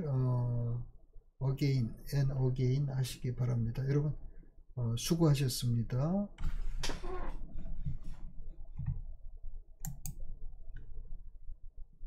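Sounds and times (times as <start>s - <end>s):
low steady hum: 0.0s - 12.0s
computer mouse clicks: 9.8s - 10.9s.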